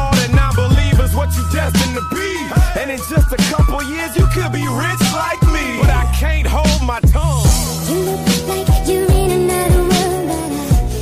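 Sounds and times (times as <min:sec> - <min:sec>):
person rapping: 0:00.0 - 0:10.8
hip-hop beat with deep bass drum: 0:00.0 - 0:11.0.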